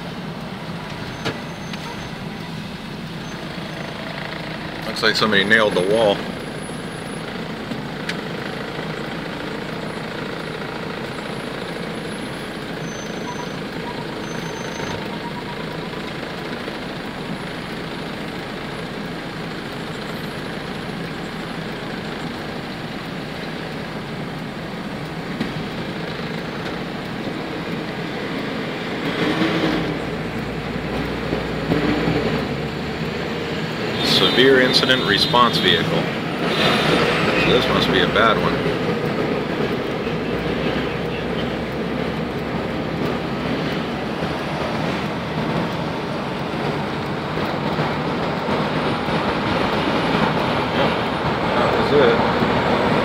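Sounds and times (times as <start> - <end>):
road and engine noise inside car: 0.0 - 53.0.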